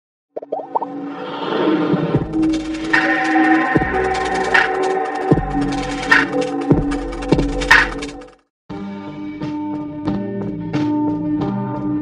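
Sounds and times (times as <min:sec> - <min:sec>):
intro music: 0:02.2 - 0:10.8.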